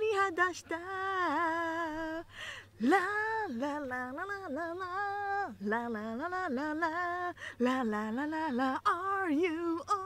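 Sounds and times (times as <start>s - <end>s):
woman singing into a microphone: 0.0s - 10.0s.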